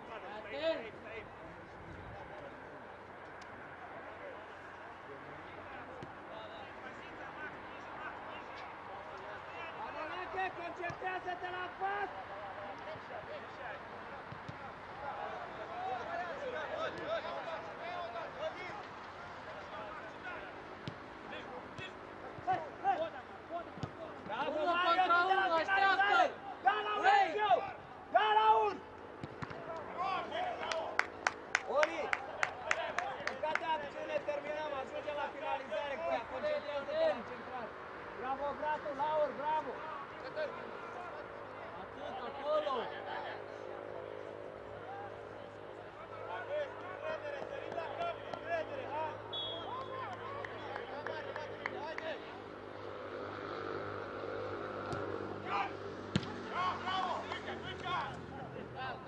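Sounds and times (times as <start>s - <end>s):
players and coaches shouting: 5.5s - 18.8s, 21.3s - 31.0s, 45.9s - 52.3s, 55.4s - 59.0s.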